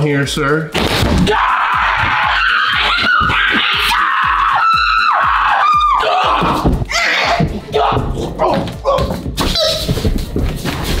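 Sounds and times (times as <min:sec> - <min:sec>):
music with fast steady beat: 0:01.3 - 0:11.0.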